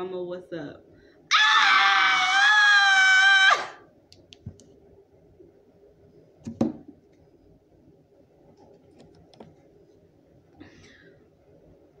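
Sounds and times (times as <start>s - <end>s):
woman screaming: 1.3s - 3.8s.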